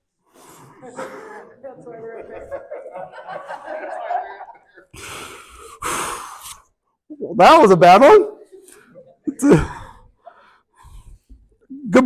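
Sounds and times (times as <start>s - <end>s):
man laughing: 0.8s - 4.8s
loud gasping breaths: 4.9s - 6.7s, 9.4s - 11.5s.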